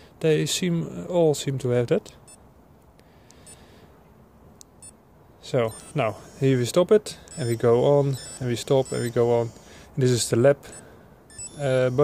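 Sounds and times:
watch beeping high-pitched: 5.7s - 6.7s, 7.3s - 9.7s, 10.7s - 12.0s.

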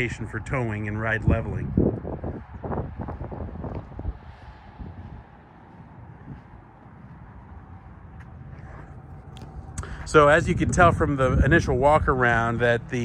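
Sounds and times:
wind on microphone: 0.0s - 7.9s, 8.7s - 13.0s.

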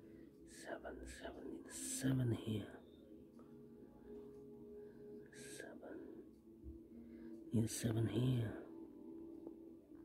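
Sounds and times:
man whispering: 0.4s - 3.0s, 5.3s - 6.3s, 7.5s - 8.8s.

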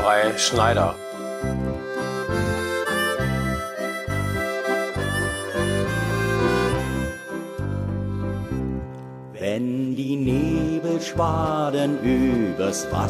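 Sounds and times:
instrumental melody over bass: 0.0s - 13.0s.

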